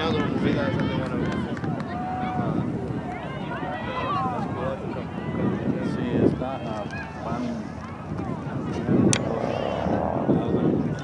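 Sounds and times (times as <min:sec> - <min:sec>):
players and spectators shouting: 0:00.0 - 0:11.0
wind rumbling on microphone: 0:00.0 - 0:11.0.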